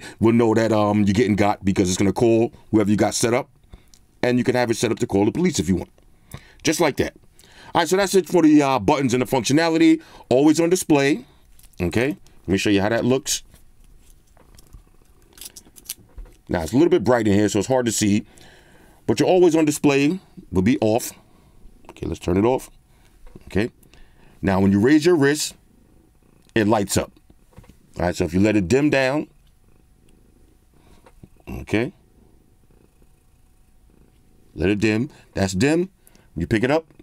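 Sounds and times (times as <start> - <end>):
faint low hum: 0.0 - 37.0.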